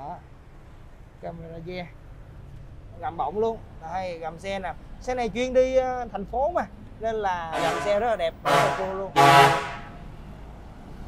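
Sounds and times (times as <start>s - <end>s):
low traffic rumble: 0.0s - 11.0s
vehicle horn toot: 7.5s - 10.0s.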